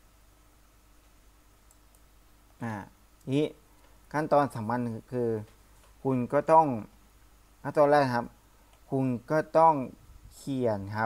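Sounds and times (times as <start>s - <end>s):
computer mouse clicks: 1.0s - 2.1s
man speaking syllable: 2.6s - 3.6s, 8.9s - 11.0s.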